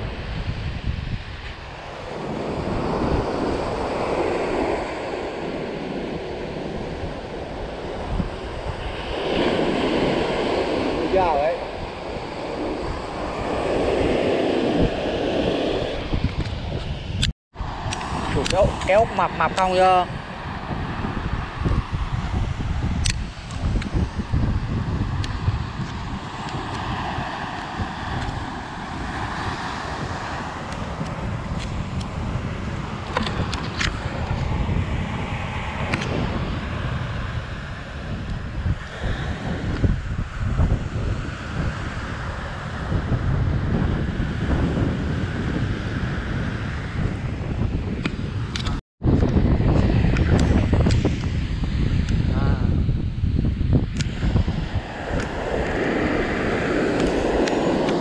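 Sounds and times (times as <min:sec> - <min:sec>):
breaking surf: 0:00.0 - 0:48.8, 0:53.8 - 0:58.0
wind noise on microphone: 0:00.0 - 0:58.0.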